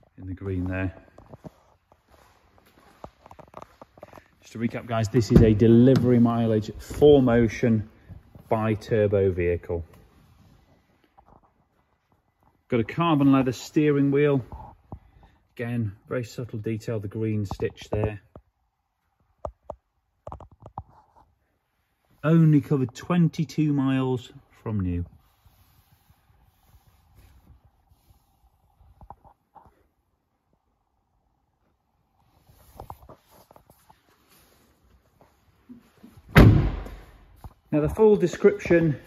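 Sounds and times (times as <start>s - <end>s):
van door slamming: 36.3s - 37.1s.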